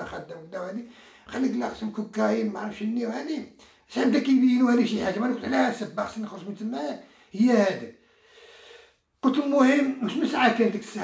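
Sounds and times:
man talking: 0:00.0 - 0:08.0, 0:09.2 - 0:11.0.

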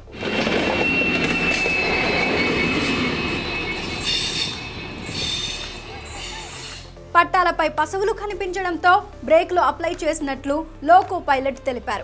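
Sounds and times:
train wheels rumbling on rails: 0:00.0 - 0:06.8
high wheel squeal: 0:00.2 - 0:07.0.

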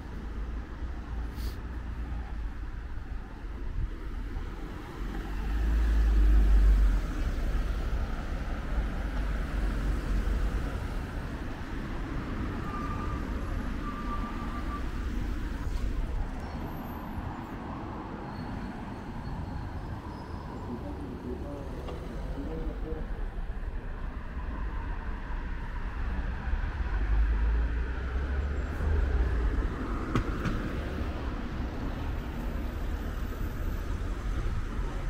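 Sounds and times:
cars driving past: 0:04.1 - 0:35.0.

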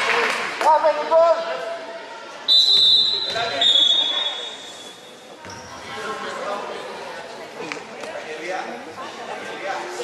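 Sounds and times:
referee's whistle long blast: 0:02.5 - 0:04.6.

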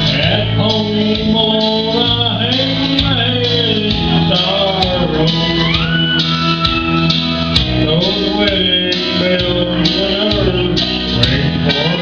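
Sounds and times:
guitar accompaniment: 0:00.0 - 0:12.0
man singing: 0:00.0 - 0:12.0.

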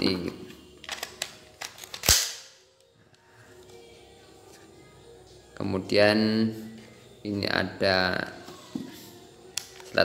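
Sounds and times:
pistol magazine clicking into grip: 0:00.8 - 0:02.6.

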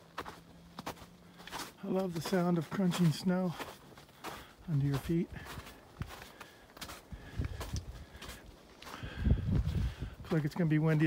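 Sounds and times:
footsteps crunching through snow: 0:00.0 - 0:11.0.

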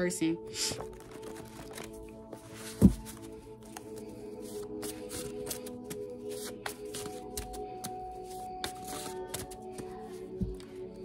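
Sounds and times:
background music of held notes: 0:00.0 - 0:11.0
cards being shuffled: 0:00.7 - 0:10.0.

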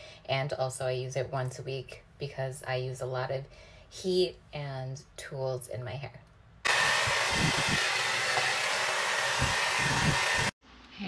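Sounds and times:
hair dryer blowing: 0:06.7 - 0:10.6.

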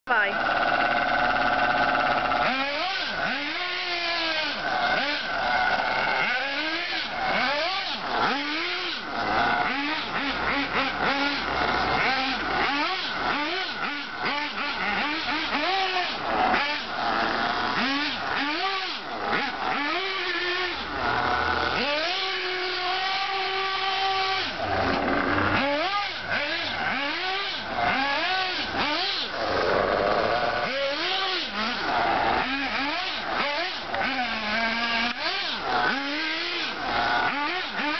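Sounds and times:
rc car motor revving: 0:00.1 - 0:37.9.

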